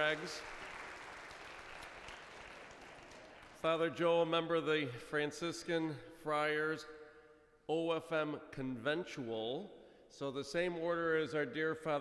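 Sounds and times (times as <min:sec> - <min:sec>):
faint applause: 0:00.0 - 0:03.8.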